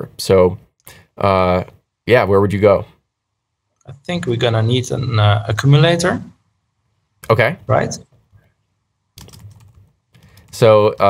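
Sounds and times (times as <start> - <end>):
people talking: 0.0 - 0.6, 1.2 - 2.9, 3.9 - 6.4, 7.2 - 8.0, 10.5 - 11.0
keyboard typing: 9.2 - 11.0.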